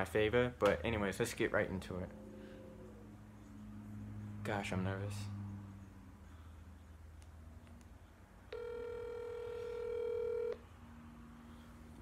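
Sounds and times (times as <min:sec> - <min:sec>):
telephone ringback tone: 0:08.5 - 0:10.6.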